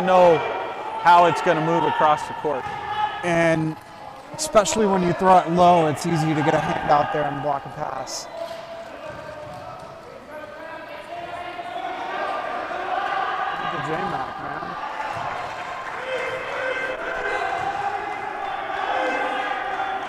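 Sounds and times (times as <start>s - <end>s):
players calling out: 0.0s - 20.0s.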